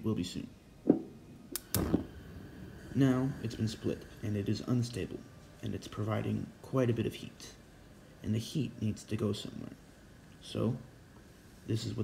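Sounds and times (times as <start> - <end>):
gas burner flame burning: 0.8 - 12.0
gas burner igniter clicks: 1.5 - 2.5.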